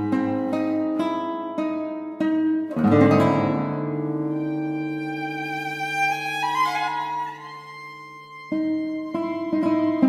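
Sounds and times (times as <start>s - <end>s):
classical guitar plucked notes: 0.0s - 10.0s.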